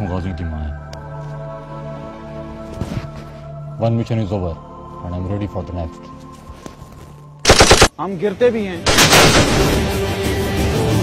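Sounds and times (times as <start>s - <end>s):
automatic gunfire burst: 7.5s - 7.9s, 8.9s - 9.8s.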